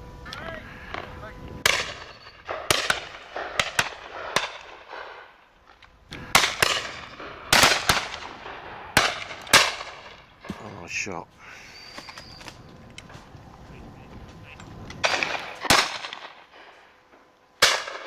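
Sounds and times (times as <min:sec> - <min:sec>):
shotgun shots with echo: 0:00.9 - 0:05.3, 0:06.2 - 0:10.7, 0:15.0 - 0:16.7, 0:17.6 - 0:18.0.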